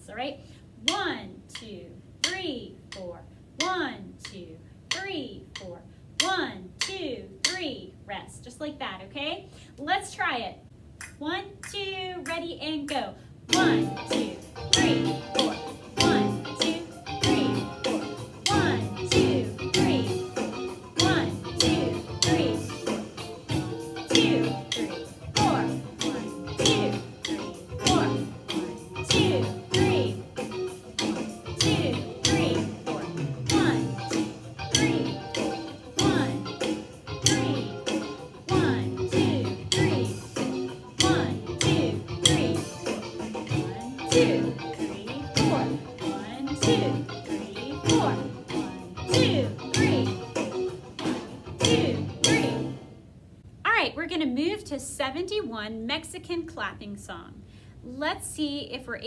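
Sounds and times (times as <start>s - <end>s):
play-along accompaniment track: 13.5s - 53.0s
snare drum beat: 21.0s - 40.1s.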